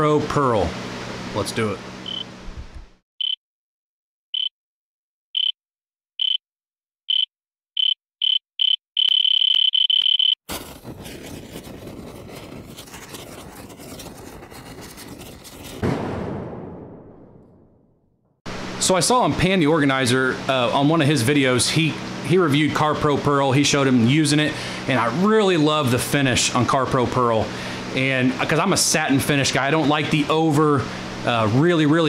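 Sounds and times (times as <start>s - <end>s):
high-pitched electronic beeps: 2.1s - 2.3s, 5.4s - 5.6s, 7.1s - 10.4s.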